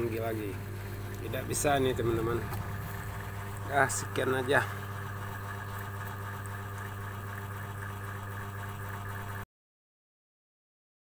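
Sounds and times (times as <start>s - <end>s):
low droning hum: 0.0s - 7.2s.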